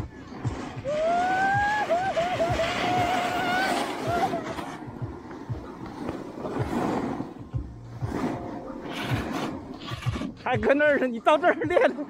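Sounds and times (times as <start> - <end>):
wavering high whine: 0.0 - 6.0
snowboard scraping over snow: 0.0 - 12.0.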